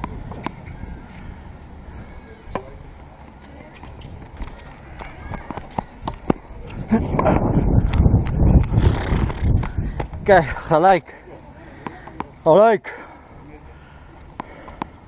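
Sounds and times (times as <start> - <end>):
rackets striking tennis ball: 3.3 - 8.4, 14.3 - 15.0
ball bouncing: 3.8 - 6.4.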